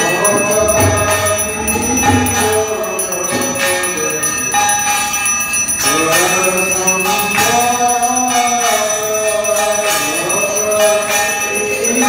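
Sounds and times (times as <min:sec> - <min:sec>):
bell ringing continuously: 0:00.0 - 0:12.0
devotional singing and music: 0:00.0 - 0:12.0.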